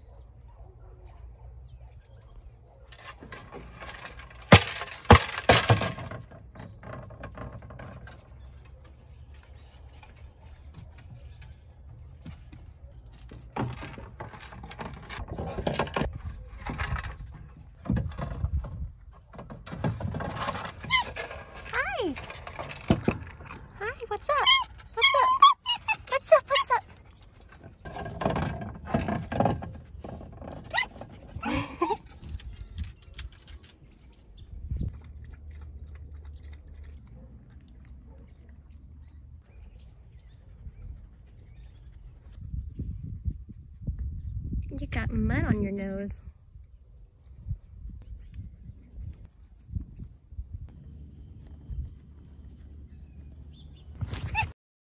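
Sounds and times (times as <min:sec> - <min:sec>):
plastic ball knocking and rattling: 0:03.0 - 0:08.3, 0:13.3 - 0:23.8, 0:27.4 - 0:31.4.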